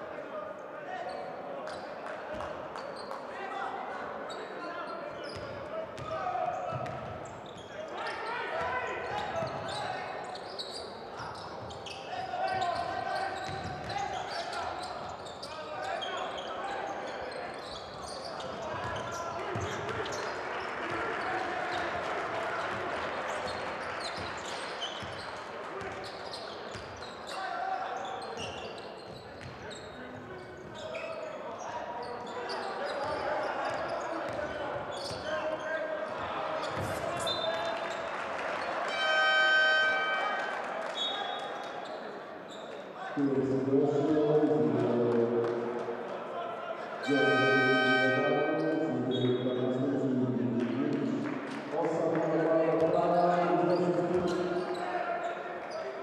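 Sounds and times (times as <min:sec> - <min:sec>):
voices shouting in a hall: 0:00.0 - 0:56.0.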